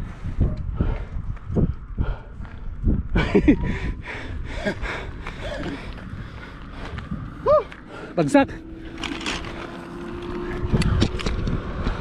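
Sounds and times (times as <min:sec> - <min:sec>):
wind on microphone: 0:00.0 - 0:12.0
man gasping breathily: 0:03.6 - 0:08.2.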